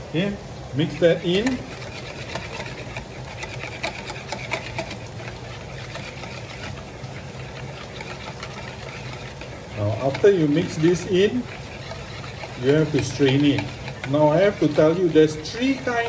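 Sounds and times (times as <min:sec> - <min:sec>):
liquid swishing and sloshing: 0:00.0 - 0:16.0
whisk clicking against plastic bowl: 0:00.8 - 0:16.0.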